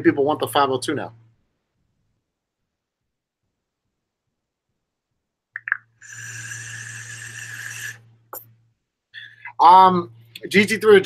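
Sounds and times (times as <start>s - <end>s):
vape airy hiss: 6.0s - 8.1s.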